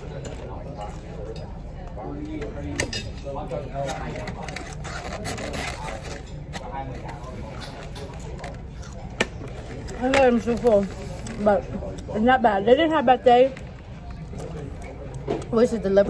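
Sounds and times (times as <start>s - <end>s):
faint voices: 0.0s - 16.0s
chewing crusty bread: 3.6s - 12.2s, 13.6s - 15.5s.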